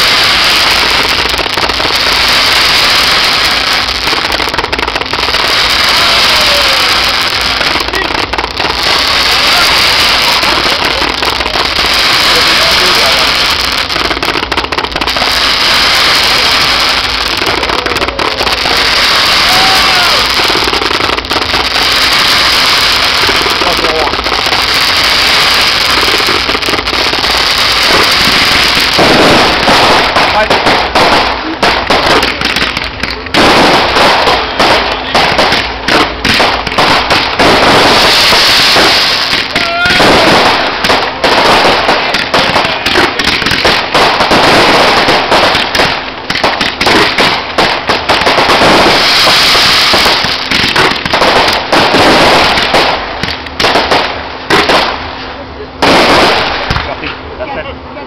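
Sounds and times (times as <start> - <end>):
fireworks bangs: 0.0 - 57.4
fireworks launching: 0.0 - 57.4
fireworks crackling: 0.0 - 58.0.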